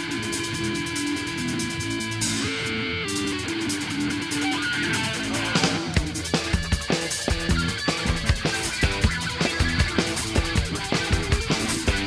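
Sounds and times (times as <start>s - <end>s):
punk rock band playing: 0.0s - 12.0s.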